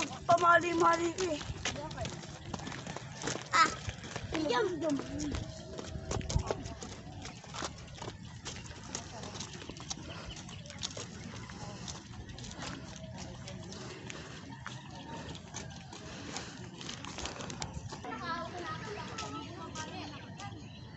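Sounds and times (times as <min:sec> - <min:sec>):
footsteps on dirt road: 0:00.0 - 0:20.9.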